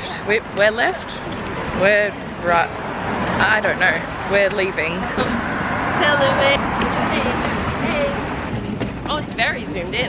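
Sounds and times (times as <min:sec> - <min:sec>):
road traffic noise: 0:00.0 - 0:10.0.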